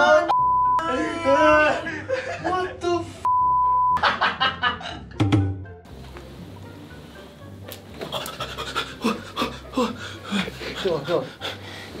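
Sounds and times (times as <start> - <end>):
man gasping and crying out: 8.2 - 11.7.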